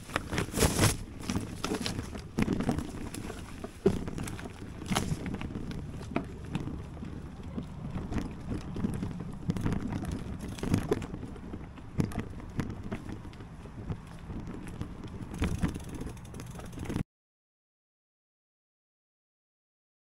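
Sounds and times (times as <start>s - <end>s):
wind rumbling on microphone: 0.0s - 17.0s
camera handling knocks and crunches: 0.1s - 6.8s.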